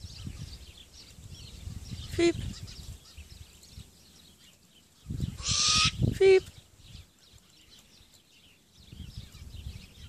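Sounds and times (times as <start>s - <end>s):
owl harsh hissing call: 5.4s - 6.0s.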